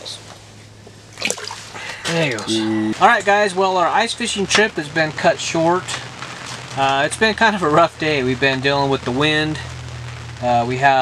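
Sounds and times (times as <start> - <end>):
fish splashing in water: 1.1 - 2.0.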